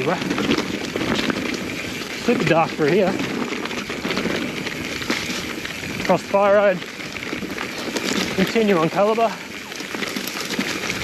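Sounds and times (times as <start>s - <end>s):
bike chassis rattle: 0.0s - 11.0s
bike tyres rolling on dirt: 0.0s - 11.0s.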